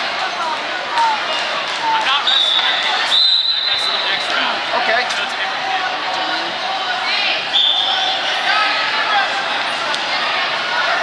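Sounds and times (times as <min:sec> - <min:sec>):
spectators chattering: 0:00.0 - 0:11.0
referee whistle blast: 0:02.2 - 0:04.2, 0:07.5 - 0:08.3.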